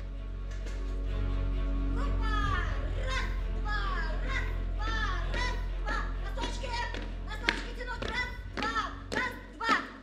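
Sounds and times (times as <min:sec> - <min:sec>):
low musical drone: 0:00.0 - 0:09.6.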